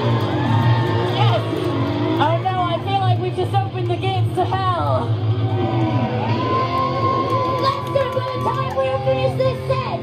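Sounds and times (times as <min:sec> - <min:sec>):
steady low bass: 0:00.0 - 0:07.6.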